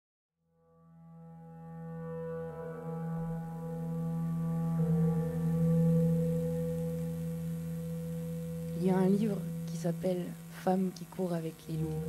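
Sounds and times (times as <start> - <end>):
low musical drone: 0.9 - 12.0.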